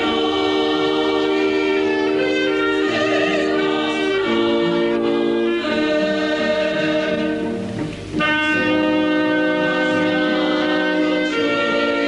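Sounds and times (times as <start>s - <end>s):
choir singing: 0.0s - 7.8s, 8.4s - 12.0s
orchestra playing sustained chords: 0.0s - 12.0s.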